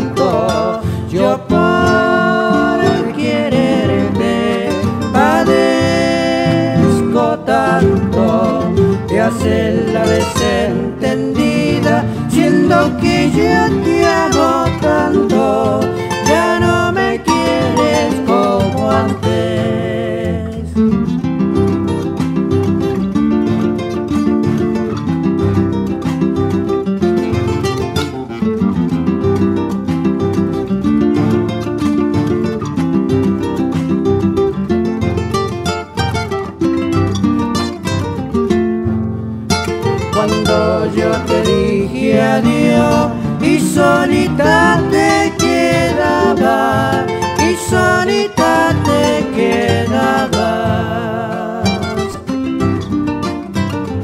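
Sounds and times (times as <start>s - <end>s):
voices singing: 0.0s - 20.8s, 40.0s - 52.5s
acoustic guitars strumming: 0.0s - 54.0s
bass guitar line: 0.0s - 54.0s.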